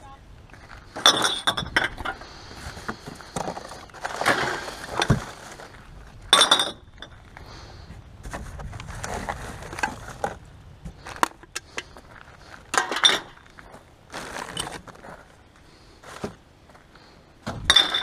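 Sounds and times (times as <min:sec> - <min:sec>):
bottles clinking: 0:01.0 - 0:02.2, 0:06.3 - 0:07.2, 0:12.7 - 0:13.5, 0:17.7 - 0:18.0
packaging rustling: 0:14.1 - 0:15.3.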